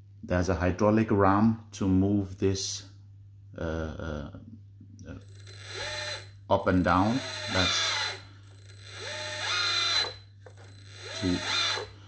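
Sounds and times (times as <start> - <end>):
hydraulic pump whining: 5.2 - 12.0.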